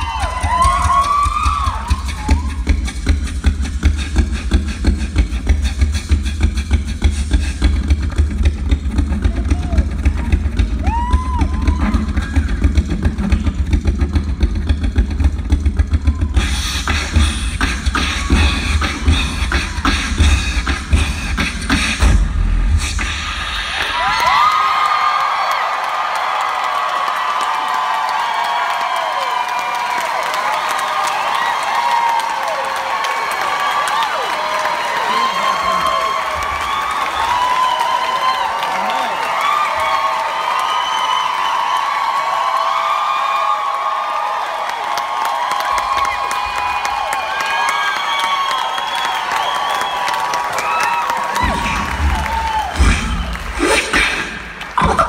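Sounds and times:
crowd cheering and screaming: 0.0s - 2.9s, 8.9s - 20.2s, 23.0s - 55.0s
beatboxed drums with bass kicks: 0.0s - 24.3s, 51.4s - 55.0s.

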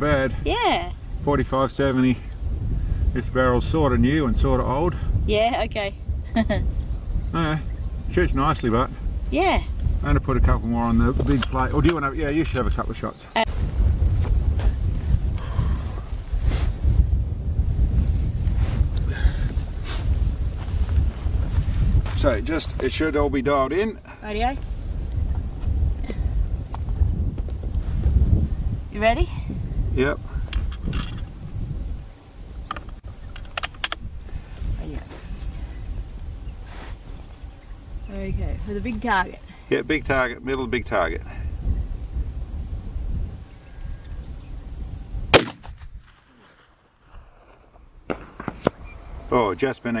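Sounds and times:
wind buffeting microphone: 0.0s - 50.0s
steady low rumble: 44.9s - 50.0s
rifle shot: 45.3s - 49.0s.

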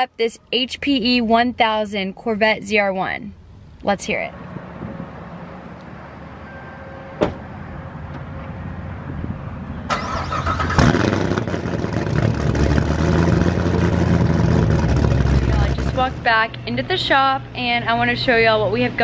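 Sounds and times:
engine cranking: 9.9s - 16.1s
engine running loudly: 10.8s - 16.2s.

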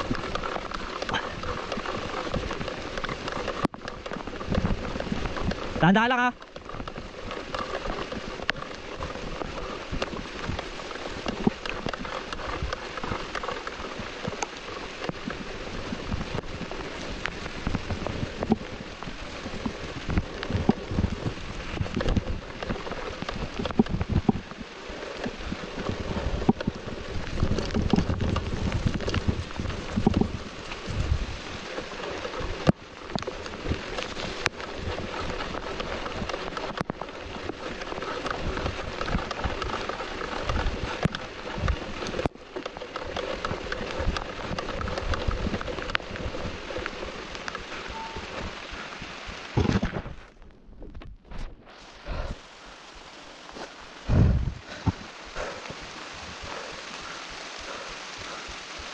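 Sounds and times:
bike ticks and knocks: 0.0s - 48.8s
rain pattering on camera: 0.0s - 58.9s
low rumbling: 53.9s - 58.5s.

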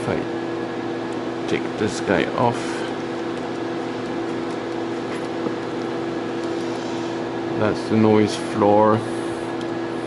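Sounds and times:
cooling fans droning: 0.0s - 10.0s.

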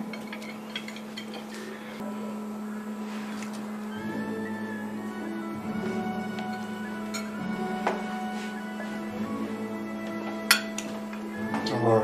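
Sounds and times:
film score sustained notes: 2.0s - 12.0s.

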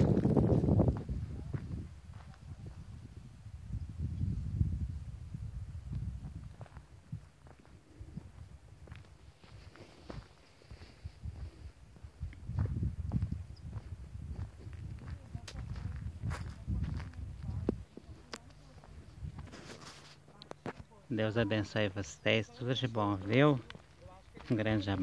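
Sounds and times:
footsteps on dirt road: 0.0s - 3.3s, 5.6s - 25.0s
wind gusting on microphone: 0.0s - 19.8s.

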